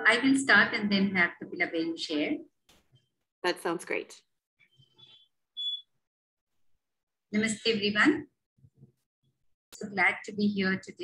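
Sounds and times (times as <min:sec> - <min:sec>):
high-pitched electronic beep: 0:05.0 - 0:05.9.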